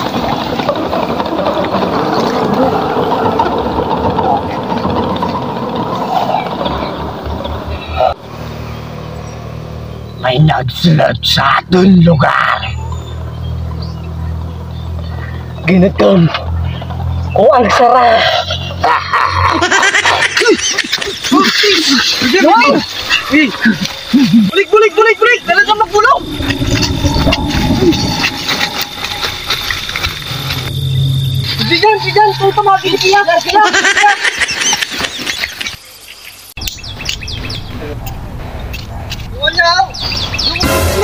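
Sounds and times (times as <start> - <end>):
birds chirping: 0.0 - 41.0
steady low hum: 24.0 - 33.6
steady low rumble: 24.5 - 33.8.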